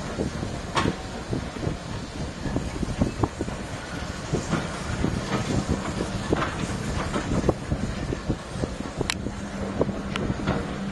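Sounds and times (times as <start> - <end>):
steam locomotive clanks and knocks: 0.0 - 10.9
steam locomotive low rumble: 0.0 - 10.9.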